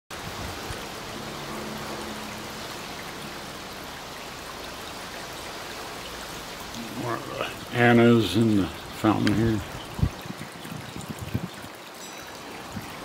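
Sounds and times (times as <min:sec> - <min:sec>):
fountain water trickling: 0:00.1 - 0:13.0.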